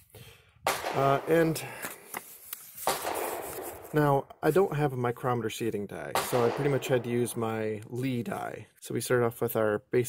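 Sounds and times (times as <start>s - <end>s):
paper rustling: 1.8s - 4.0s.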